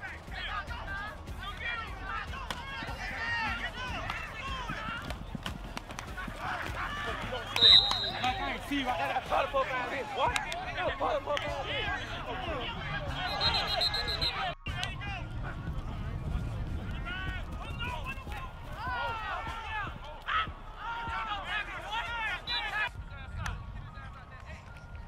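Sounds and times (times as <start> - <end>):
people talking and calling out: 0.0 - 25.0.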